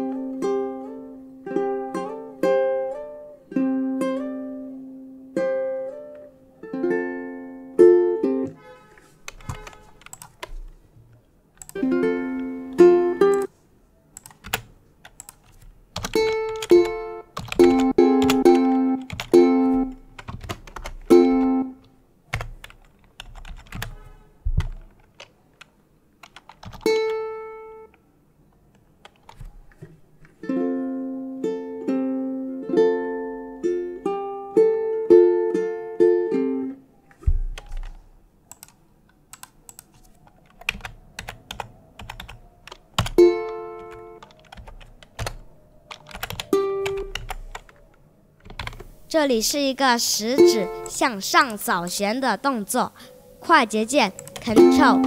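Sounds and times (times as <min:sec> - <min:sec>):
plucked ukulele notes: 0:00.0 - 0:08.6, 0:11.8 - 0:13.5, 0:16.2 - 0:20.0, 0:21.1 - 0:21.8, 0:30.4 - 0:36.8, 0:43.2 - 0:44.2, 0:54.6 - 0:55.0
keyboard keys clicking: 0:09.3 - 0:13.5, 0:14.2 - 0:27.2, 0:28.6 - 0:29.9, 0:37.1 - 0:48.9, 0:54.1 - 0:55.0.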